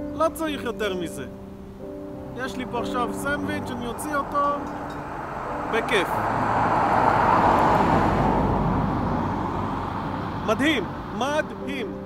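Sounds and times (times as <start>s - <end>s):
motor vehicle passing by: 2.3s - 12.0s.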